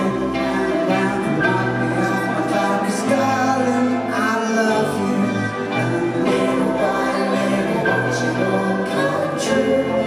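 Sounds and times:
choir-like backing voices: 0.0 - 10.0
live rock band playing: 0.0 - 10.0.

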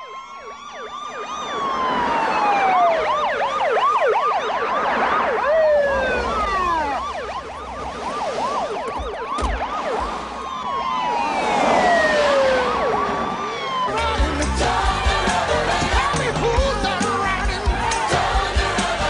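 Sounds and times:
police sirens wailing: 0.0 - 19.0
police sirens yelping: 0.0 - 19.0.

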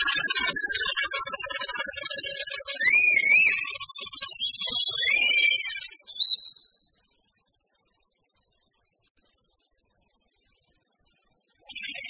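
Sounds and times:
high wavering pitched tones: 0.0 - 6.1.

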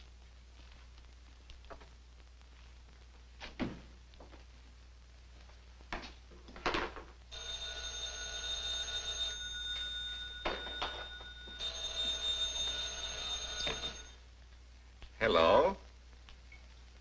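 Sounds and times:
telephone bell ringing: 7.3 - 14.2.

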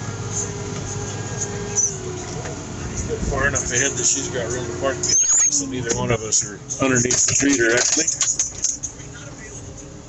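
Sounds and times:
tractor engine droning: 0.0 - 10.0.

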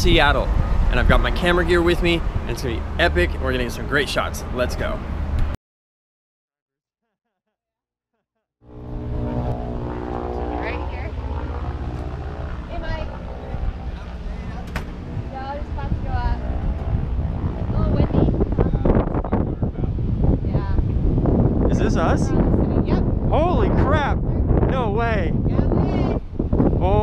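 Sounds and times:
wind buffeting microphone: 0.0 - 5.6, 8.7 - 27.0
helicopter engine and rotor: 8.7 - 23.2.

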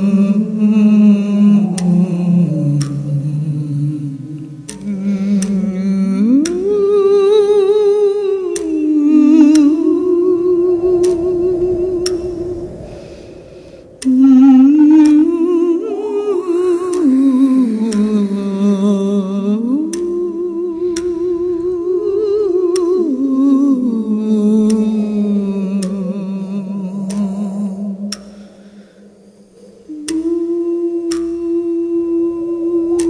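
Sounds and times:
faint regular ticks: 0.0 - 14.2, 16.3 - 33.0
person humming a slow melody: 0.0 - 33.0.

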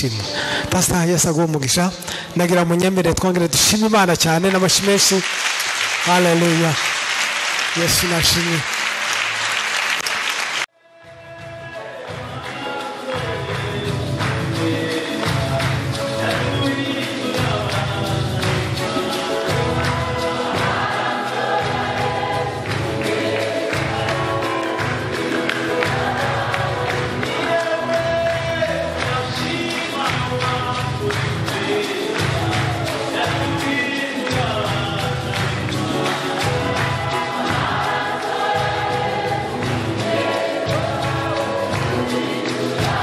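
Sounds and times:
percussion beat: 0.0 - 43.0
hand clapping: 4.4 - 10.7, 12.3 - 43.0
gospel choir singing: 5.6 - 43.0
instrumental accompaniment: 5.6 - 43.0.

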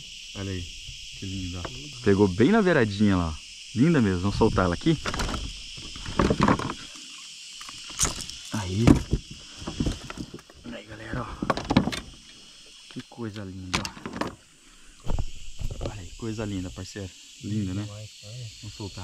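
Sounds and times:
high drone of insects: 0.0 - 19.0.

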